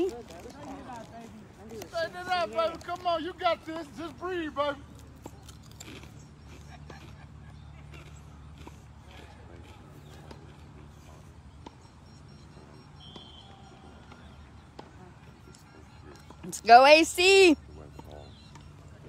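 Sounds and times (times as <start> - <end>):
faint distant voices: 0.0 - 19.0.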